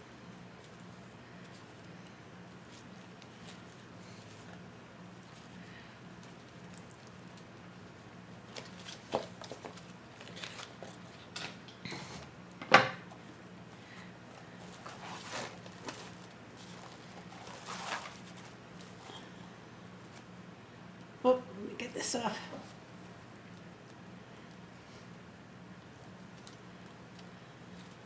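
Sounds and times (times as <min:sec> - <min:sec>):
ribbon rustling and crinkling: 0:00.3 - 0:11.7, 0:13.2 - 0:19.4.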